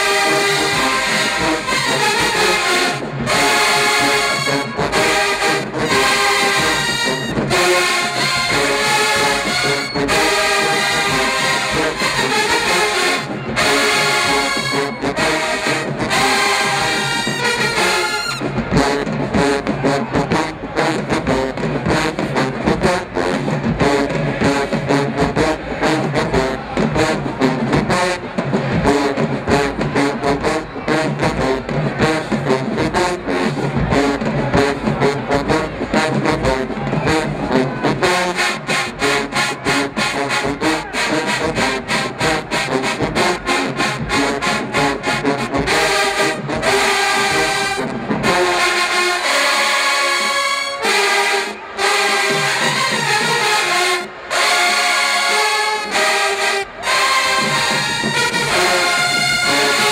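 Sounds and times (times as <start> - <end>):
marching band playing: 0.0 - 59.9.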